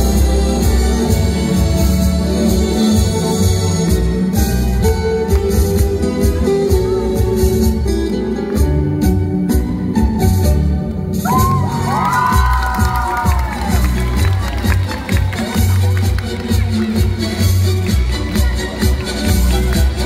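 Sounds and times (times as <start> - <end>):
dance music over loudspeakers: 11.1 - 20.0.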